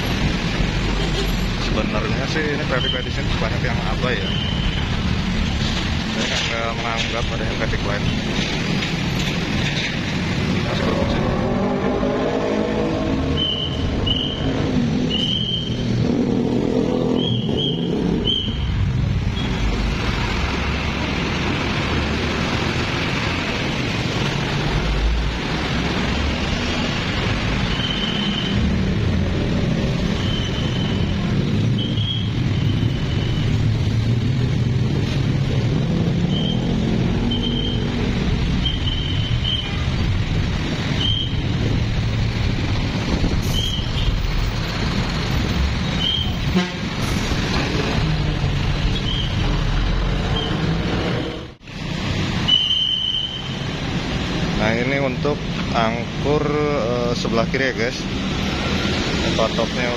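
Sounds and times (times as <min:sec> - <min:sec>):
engines revving pulling away: 0:00.0 - 0:52.5, 0:57.0 - 0:59.9
road traffic roar: 0:00.0 - 0:59.9.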